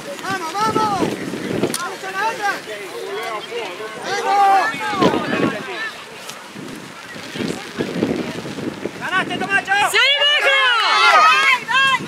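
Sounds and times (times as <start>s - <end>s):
distant voices: 0.0s - 12.0s
wind rumbling on microphone: 0.0s - 12.0s.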